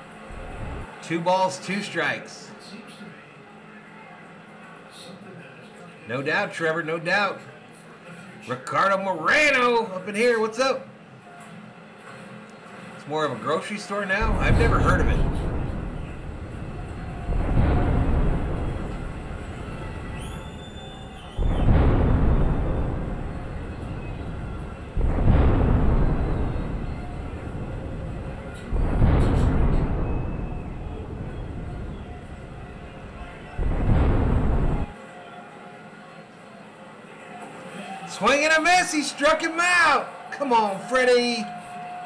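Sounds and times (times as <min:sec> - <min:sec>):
dramatic music booming hits: 0:14.2 - 0:34.9.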